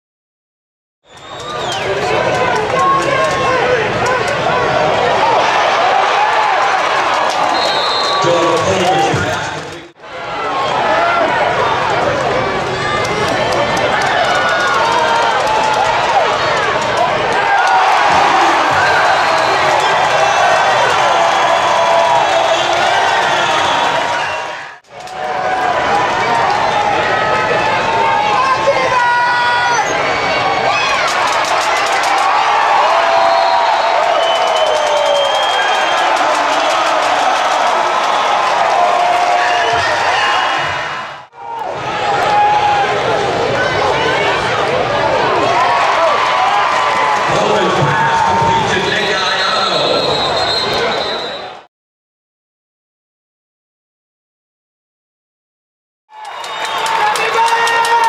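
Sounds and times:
crowd shouting and talking: 0:01.1 - 0:51.7, 0:56.1 - 0:58.0.

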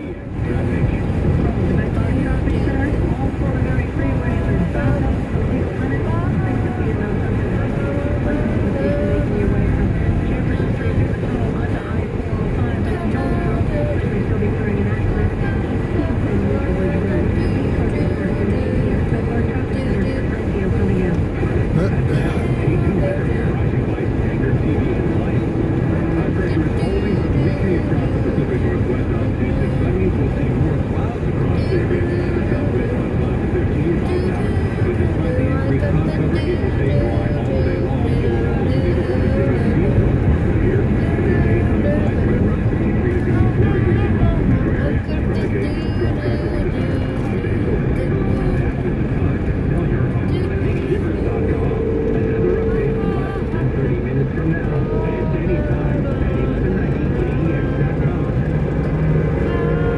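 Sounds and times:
car engine hum: 0:00.0 - 0:59.9
road and tyre noise: 0:00.0 - 0:59.9.

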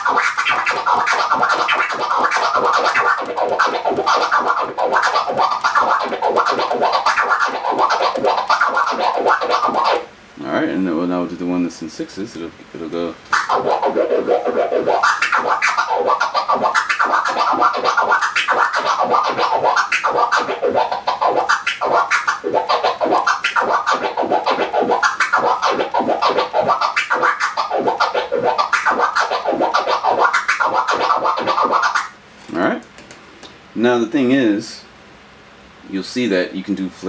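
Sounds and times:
vinyl record scratching: 0:00.0 - 0:10.1, 0:12.7 - 0:32.2.

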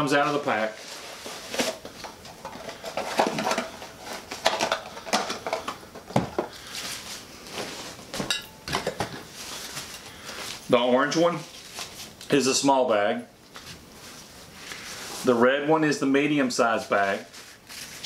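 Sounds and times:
paper and nylon rustling: 0:00.0 - 0:05.7, 0:06.4 - 0:08.2, 0:09.0 - 0:12.6, 0:13.5 - 0:18.0.

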